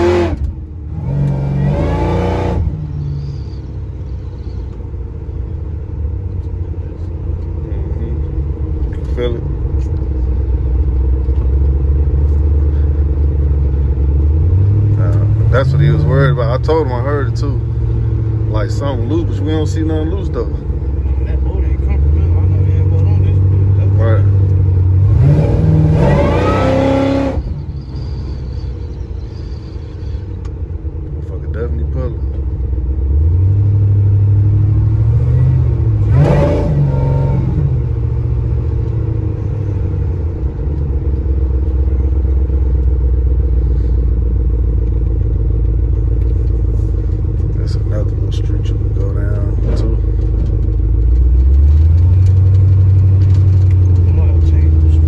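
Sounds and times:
pickup engine from inside cab: 0.0 - 55.0.

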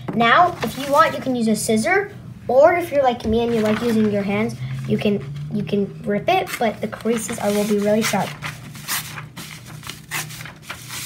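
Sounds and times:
paper tearing: 6.5 - 11.0.

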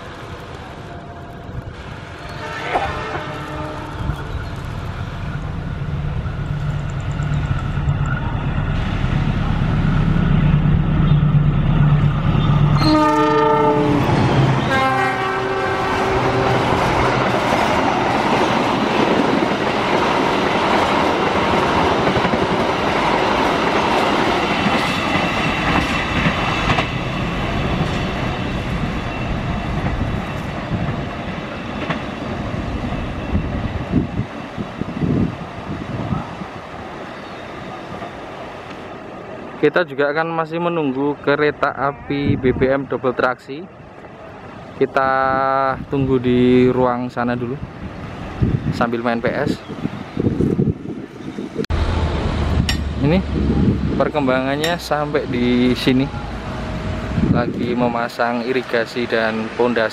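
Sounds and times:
coaches rumbling on rails: 0.0 - 39.7, 41.1 - 59.9
train horn blasts: 2.3 - 4.1, 12.8 - 16.7
locomotive engine drone: 3.7 - 19.7, 51.7 - 57.6.

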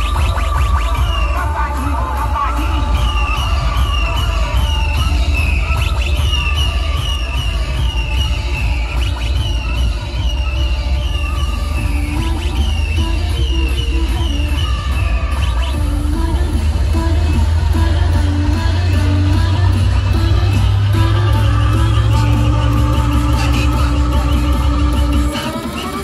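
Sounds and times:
loud electronic dance music: 0.0 - 26.0.

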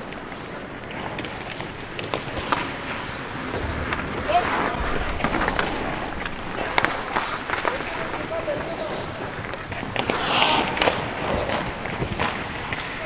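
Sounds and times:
hockey sticks and puck clacking: 0.0 - 13.0
skate blades scraping ice: 0.0 - 13.0
players shouting: 3.6 - 9.5.

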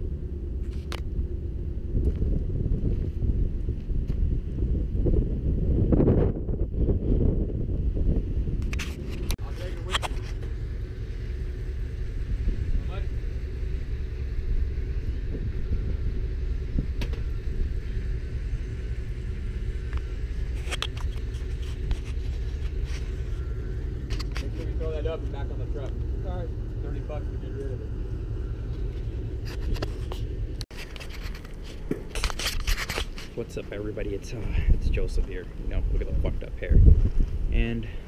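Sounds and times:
low mechanical rumble: 0.0 - 38.0.

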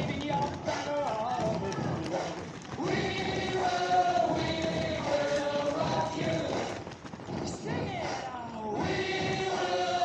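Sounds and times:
running shoes slapping on asphalt: 0.0 - 9.0
voices: 0.0 - 10.0.

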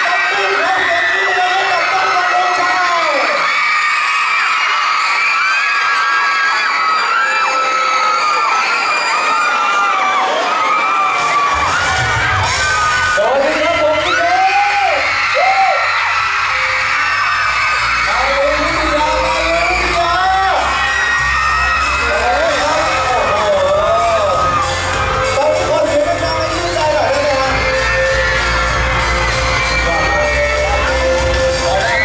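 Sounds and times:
crowd screaming: 0.0 - 32.0
song over pa with bass beat: 15.4 - 32.0.

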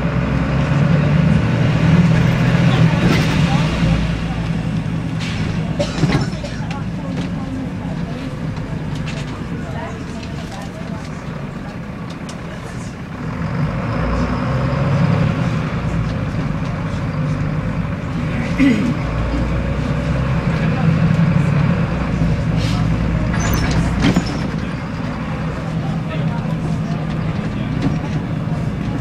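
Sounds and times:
bus diesel engine: 0.0 - 29.0
rattles: 23.2 - 25.1.

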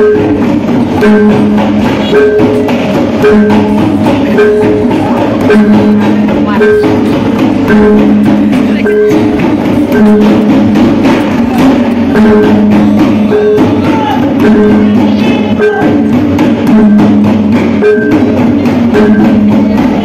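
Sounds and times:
gong-like tones: 0.0 - 20.0
hand drums beaten fast: 0.0 - 20.0.

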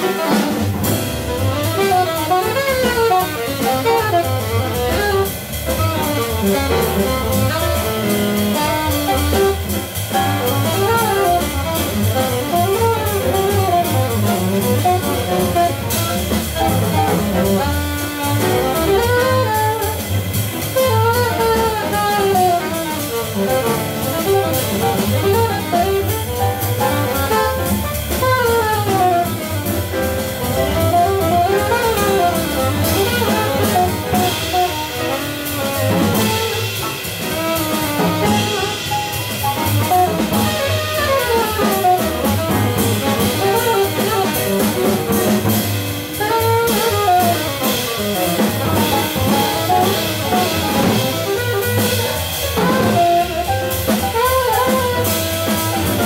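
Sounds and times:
alto saxophone solo: 0.0 - 56.0
double bass: 0.0 - 56.0
drum kit with cymbals: 0.0 - 56.0.

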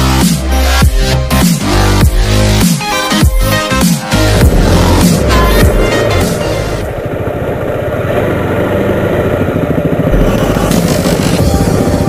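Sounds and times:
motorcycle engine running: 4.0 - 12.0.

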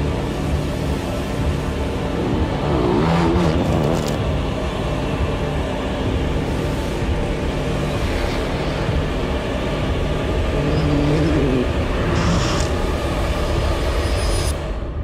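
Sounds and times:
music: 0.0 - 15.0
vehicle engine noise: 0.0 - 15.0.

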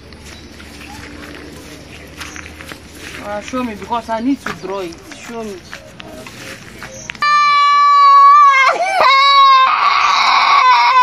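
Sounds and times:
footsteps through dry grass: 0.0 - 7.2.

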